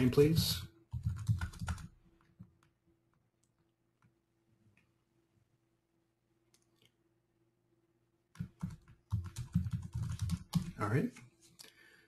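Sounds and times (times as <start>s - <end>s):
computer keyboard typing: 0.9s - 2.7s, 8.3s - 11.0s.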